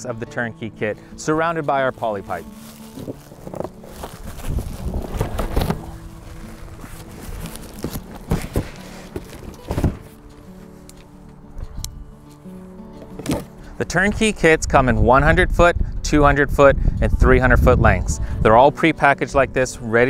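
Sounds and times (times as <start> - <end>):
background music with held notes: 0.0 - 20.0
cardboard and plastic wrap rustling: 1.9 - 11.2.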